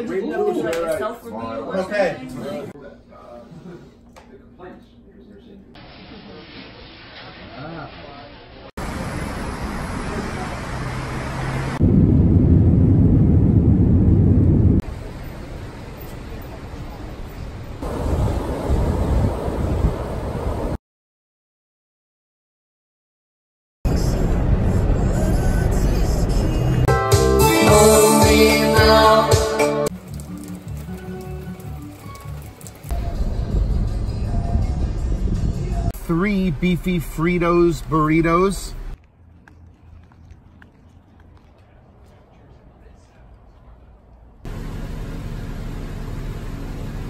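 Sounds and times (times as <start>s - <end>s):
traffic noise: 8.8s - 20.8s, 23.9s - 26.9s, 29.9s - 47.0s
loud steady low rumble: 11.8s - 15.5s, 23.9s - 26.8s, 32.9s - 39.0s, 44.5s - 47.0s
rain on wet road: 29.9s - 32.9s
suitcase wheels rolling: 29.9s - 32.9s.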